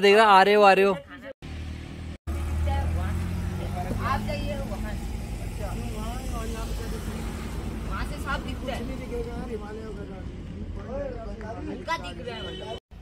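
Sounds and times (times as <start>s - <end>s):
car engine running: 1.5s - 10.7s.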